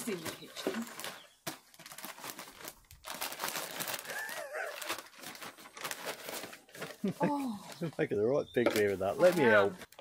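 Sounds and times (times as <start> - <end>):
plastic bag crinkling and rustling: 0.0 - 10.0.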